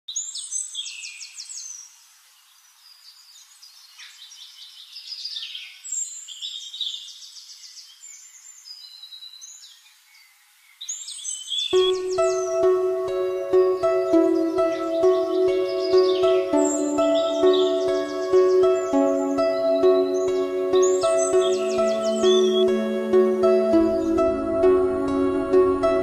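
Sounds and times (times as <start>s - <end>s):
songbirds singing chirps and trills: 0.1s - 26.0s
music with held notes: 11.8s - 26.0s.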